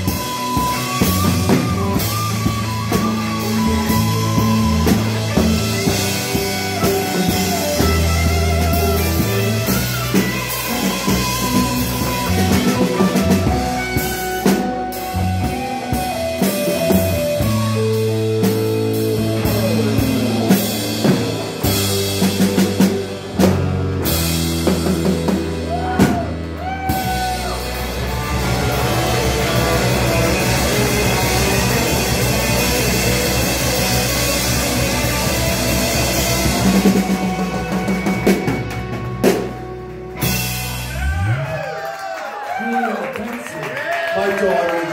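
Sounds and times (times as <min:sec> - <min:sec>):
electric guitar lead with bent notes: 0:00.0 - 0:41.7
electric bass: 0:00.0 - 0:42.5
drum kit: 0:00.0 - 0:42.8
electric guitars: 0:00.0 - 0:44.9.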